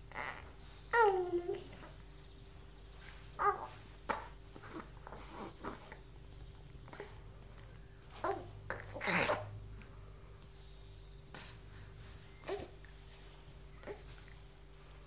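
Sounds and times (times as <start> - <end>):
baby grunting and snorting: 3.4 - 6.0, 8.3 - 9.6, 11.3 - 11.6.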